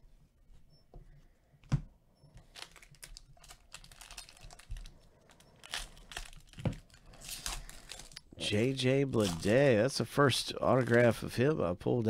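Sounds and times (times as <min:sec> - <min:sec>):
foil wrappers crinkling and tearing: 0:02.4 - 0:09.6, 0:10.4 - 0:11.4.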